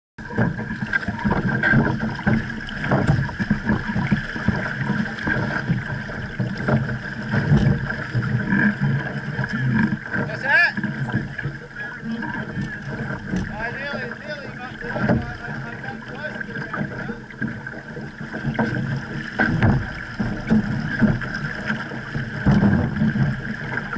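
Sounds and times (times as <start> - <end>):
water slapping against boat hull: 0.2 - 23.9.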